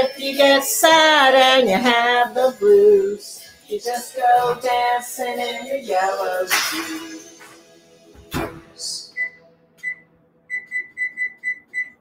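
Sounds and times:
short high electronic beeps: 9.1s - 12.0s.

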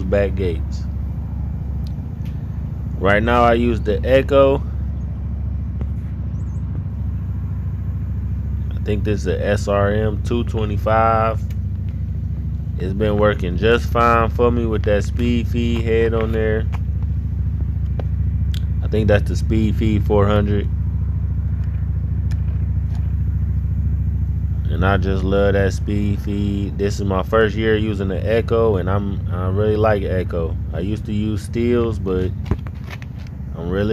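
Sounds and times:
vehicle engine idling: 0.0s - 33.9s.

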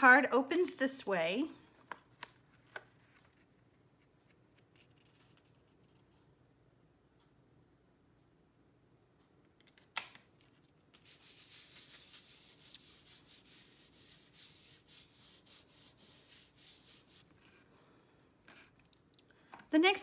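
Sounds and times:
hands rubbing on card: 10.9s - 17.3s.

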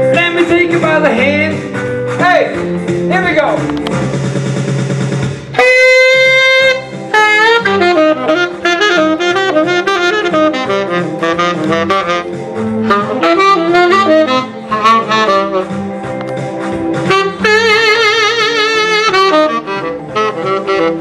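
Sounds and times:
rock and roll accompaniment: 0.0s - 21.0s
saxophone melody: 5.5s - 21.0s.

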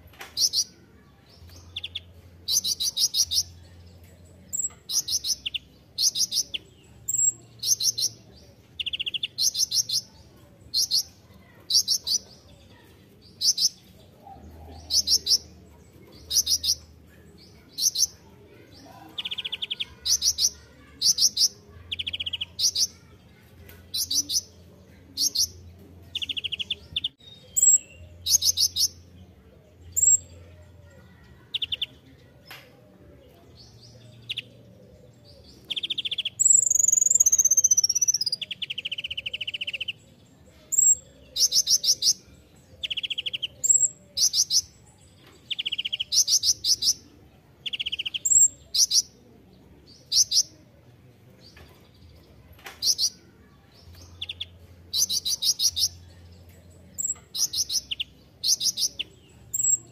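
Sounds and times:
sunbird twittering song: 1.4s - 12.8s, 25.2s - 29.1s, 35.3s - 42.2s, 47.6s - 49.1s, 53.8s - 59.9s.

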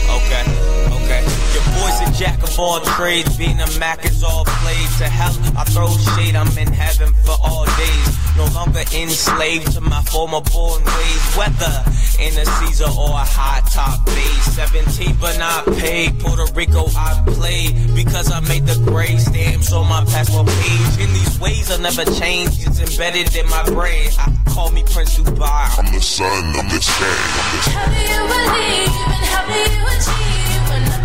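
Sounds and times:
deep bass line: 0.0s - 9.0s, 9.7s - 31.0s
man rapping over a beat: 0.0s - 31.0s.

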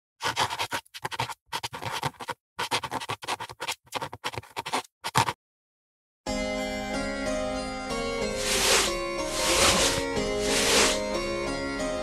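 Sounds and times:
pen scratching on paper: 0.2s - 5.4s, 8.4s - 11.0s.

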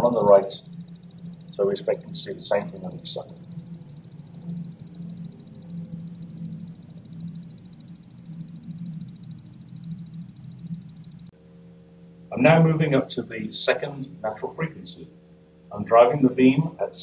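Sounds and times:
stroboscope clicking: 0.0s - 11.3s
low hum of shaker: 0.0s - 17.0s.

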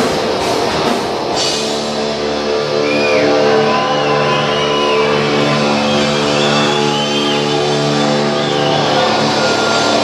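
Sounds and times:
distorted guitars and bass chord: 0.0s - 10.0s.

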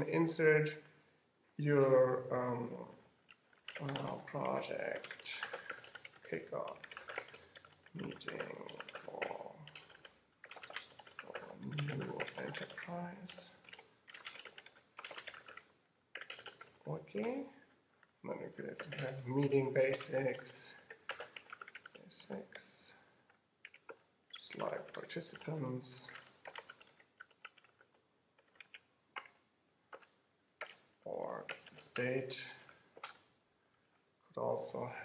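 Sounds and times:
typing on computer keyboard: 3.3s - 17.4s, 18.7s - 22.0s, 23.6s - 32.1s.

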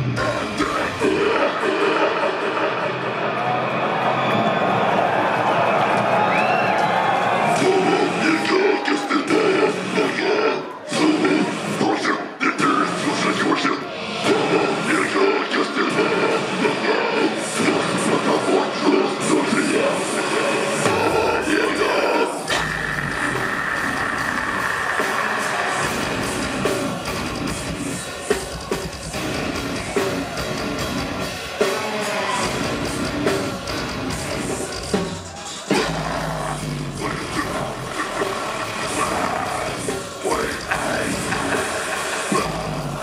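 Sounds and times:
distorted guitars: 0.0s - 4.0s, 6.0s - 43.0s
deathcore band playing: 0.0s - 43.0s
drums: 0.0s - 43.0s
harsh vocals: 0.0s - 43.0s.

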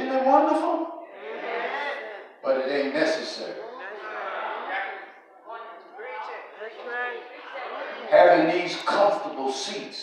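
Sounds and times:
man preaching into microphone: 0.0s - 1.1s, 2.4s - 3.6s, 8.1s - 10.0s.

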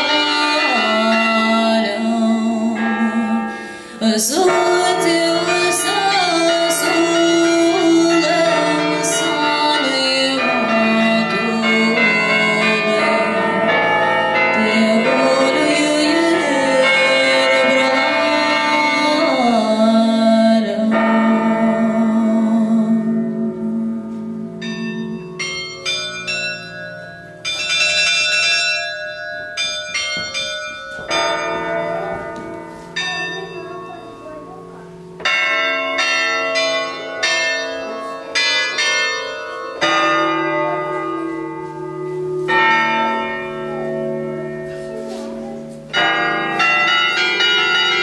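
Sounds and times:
electronic carillon bell tones: 21.1s - 48.0s.

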